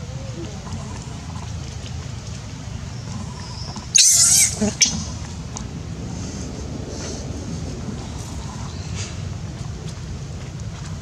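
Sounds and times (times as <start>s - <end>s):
baby monkey screaming: 3.9s - 5.0s.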